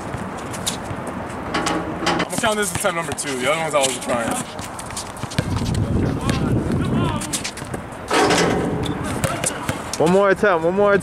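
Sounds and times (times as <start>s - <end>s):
players chattering: 2.2s - 10.8s
basketball bouncing on hard court: 5.1s - 7.8s.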